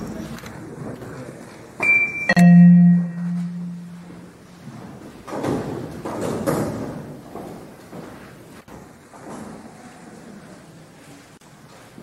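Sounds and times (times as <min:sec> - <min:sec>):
low held musical note: 0:02.3 - 0:04.4.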